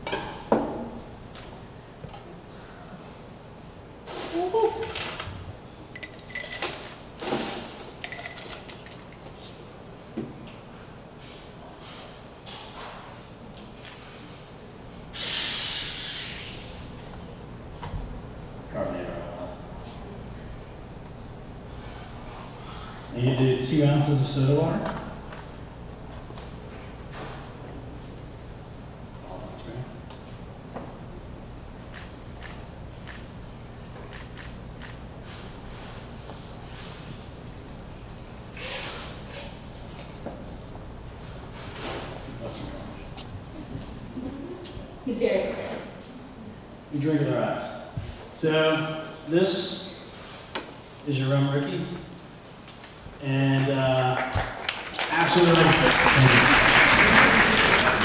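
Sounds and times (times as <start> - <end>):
steady low hum: 0.0 - 58.0
glassware and ice clinking: 6.0 - 6.9, 8.0 - 9.3.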